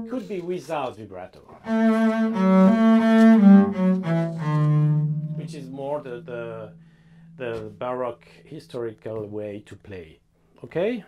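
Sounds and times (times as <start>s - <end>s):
man speaking: 0.0s - 1.6s, 5.4s - 6.8s, 7.4s - 11.0s
double bass bowed low note: 1.6s - 8.4s.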